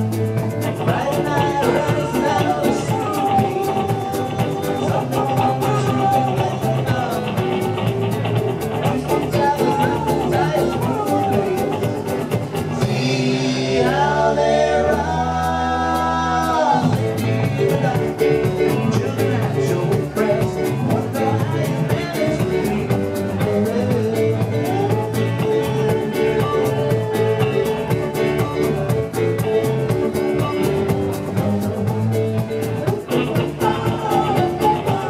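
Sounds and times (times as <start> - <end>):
live rock band playing: 0.0 - 35.0
person singing: 0.0 - 35.0.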